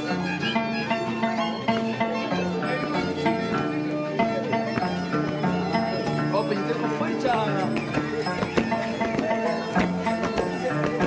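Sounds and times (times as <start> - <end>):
held string tones: 0.0 - 11.0.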